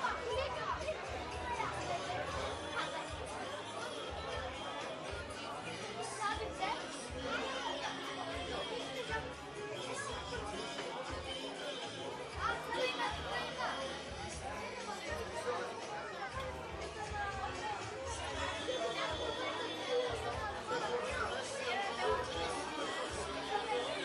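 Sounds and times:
crowd talking: 0.0s - 24.0s.

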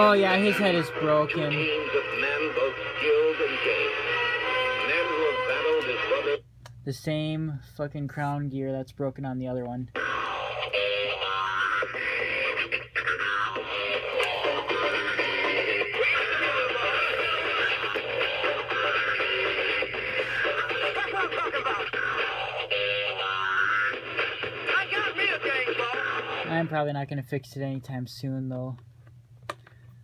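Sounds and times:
toy playing song with singing: 0.2s - 6.4s, 10.0s - 26.5s.

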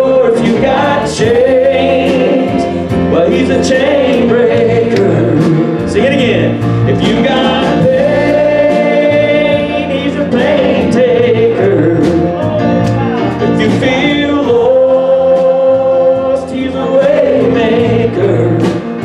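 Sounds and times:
man singing into a microphone: 0.0s - 12.6s, 13.4s - 19.0s
drum kit: 0.0s - 19.0s.

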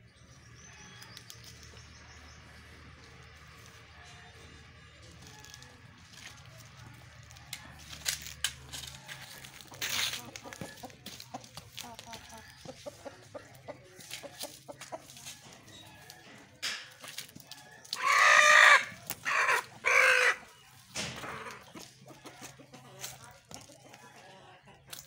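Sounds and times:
chicken calling loudly: 17.9s - 20.4s.

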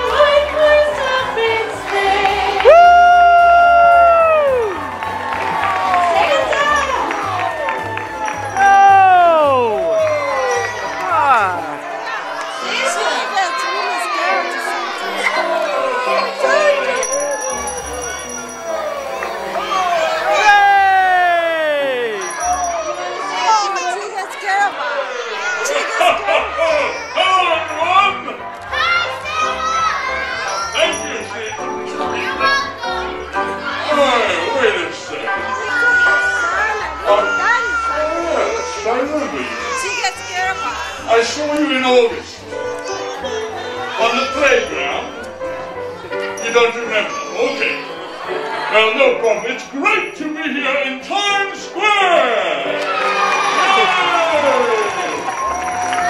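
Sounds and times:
music in a large hall: 0.0s - 23.7s, 26.9s - 56.0s
children shouting and cheering: 0.0s - 41.7s, 42.4s - 50.7s, 52.2s - 56.0s.

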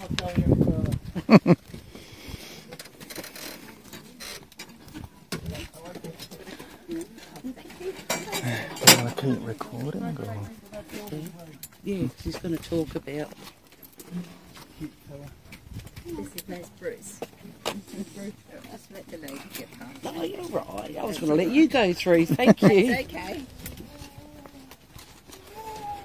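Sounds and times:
people chattering: 2.4s - 13.3s, 16.0s - 26.0s.

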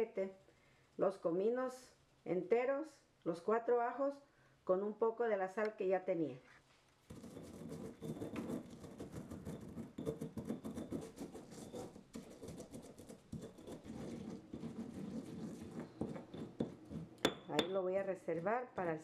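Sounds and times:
stone pestle grinding in mortar: 7.1s - 17.8s.

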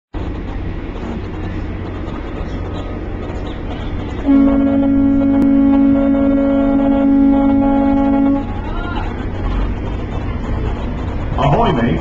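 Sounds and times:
ferry engine low rumble: 0.1s - 12.0s
passengers' voices: 0.2s - 12.0s.

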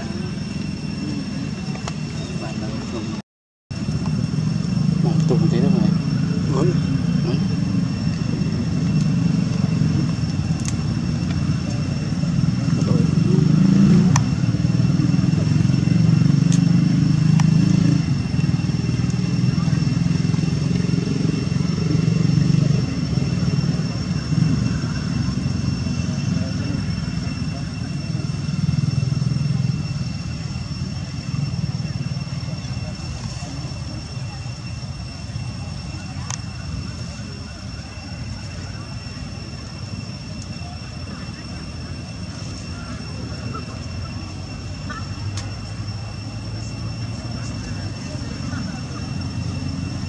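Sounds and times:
high-pitched whine: 0.0s - 50.0s
steady low rumble: 0.0s - 50.0s
indistinct voices: 3.8s - 50.0s.

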